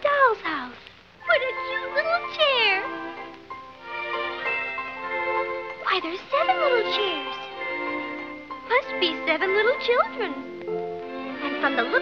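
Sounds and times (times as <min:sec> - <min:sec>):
soft background music: 0:00.0 - 0:12.0.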